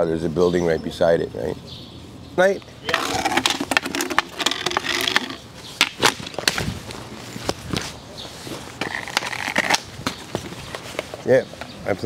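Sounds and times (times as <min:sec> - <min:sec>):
hard objects knocking and clacking: 0:03.0 - 0:06.4.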